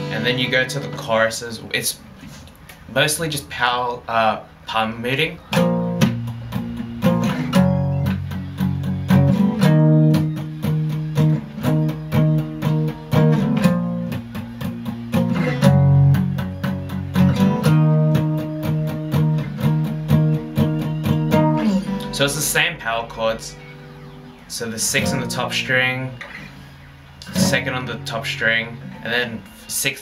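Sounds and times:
acoustic guitar palm-muted strums: 0:00.0 - 0:30.0.

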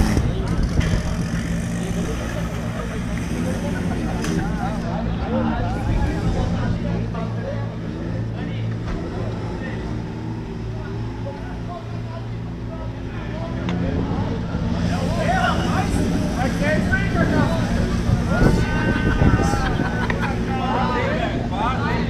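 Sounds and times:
car engine idling: 0:00.0 - 0:18.9
people talking: 0:00.0 - 0:22.0.

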